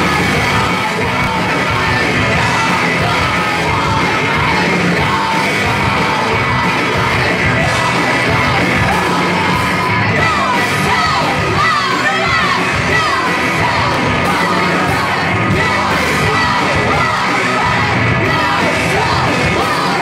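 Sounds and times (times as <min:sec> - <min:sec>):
drums: 0:00.0 - 0:20.0
electric guitars: 0:00.0 - 0:20.0.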